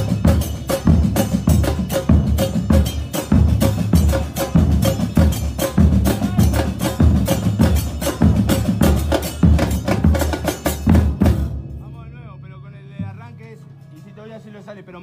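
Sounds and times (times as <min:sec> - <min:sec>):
drum band playing fast rhythm: 0:00.0 - 0:12.0.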